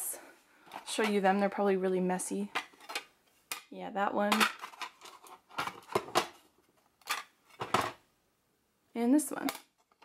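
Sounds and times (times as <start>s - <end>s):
plastic cases clacking together: 4.3s - 8.0s.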